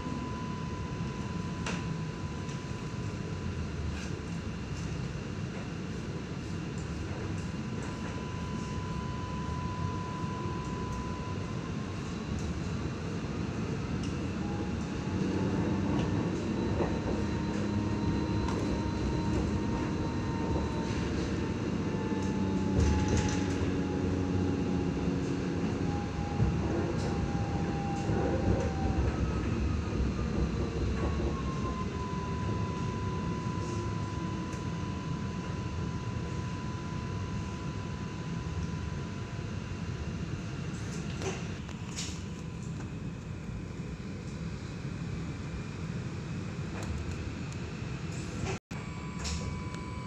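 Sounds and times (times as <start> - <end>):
electric traction whine: 7.4 - 45.8, 46.4 - 50.0
wheels rumbling on rails: 14.0 - 33.0.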